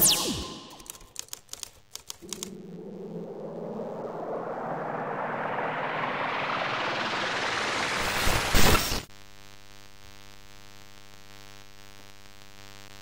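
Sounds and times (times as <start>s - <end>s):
typewriter-style clicks: 0.8s - 2.5s
rising hissing swell: 2.2s - 9.0s.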